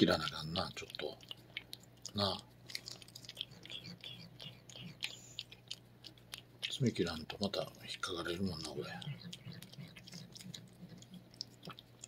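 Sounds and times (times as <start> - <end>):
cat tongue licking wet clicks: 0.0 - 12.0.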